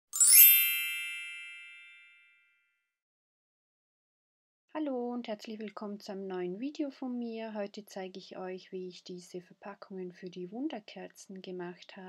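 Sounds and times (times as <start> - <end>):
bright chime ding: 0.1 - 2.5.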